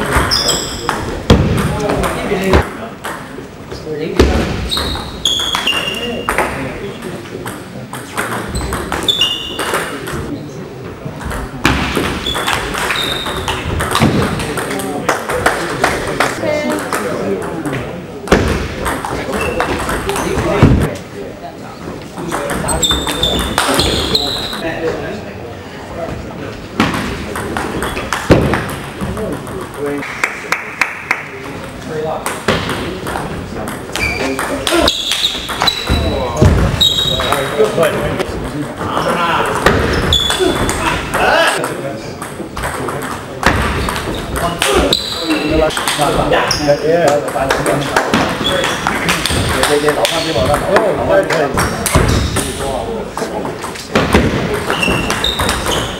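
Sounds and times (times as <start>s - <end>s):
people talking: 0.0s - 55.9s.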